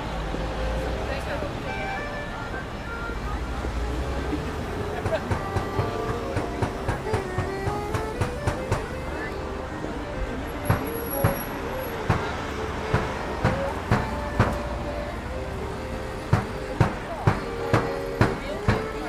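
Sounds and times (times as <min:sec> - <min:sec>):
faint accordion notes: 0:00.0 - 0:19.0
passing traffic: 0:00.0 - 0:19.0
nearby voices: 0:00.8 - 0:19.0
quick sharp taps: 0:05.0 - 0:09.1, 0:16.3 - 0:18.8
loud single knocks: 0:16.3 - 0:18.9.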